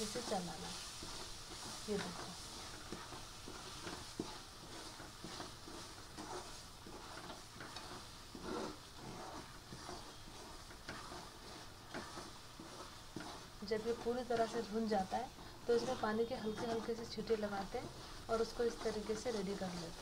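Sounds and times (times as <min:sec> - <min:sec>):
faint sizzle: 0:00.0 - 0:20.0
wooden spatula scraping a pan: 0:00.0 - 0:20.0.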